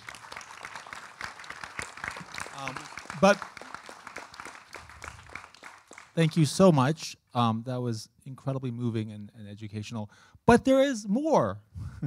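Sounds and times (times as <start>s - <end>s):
hand clapping: 0.0s - 6.5s.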